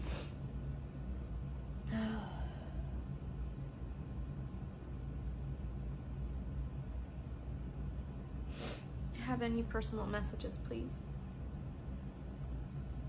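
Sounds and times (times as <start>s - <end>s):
fan humming: 0.0s - 13.0s.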